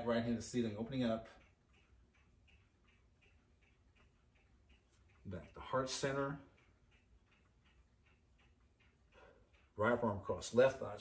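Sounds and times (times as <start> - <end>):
faint regular ticking: 0.0 - 11.0.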